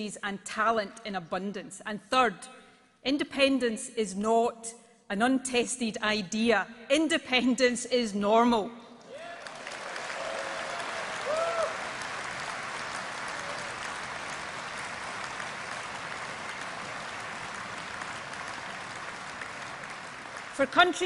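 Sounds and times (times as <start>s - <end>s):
audience applauding: 9.1s - 21.0s.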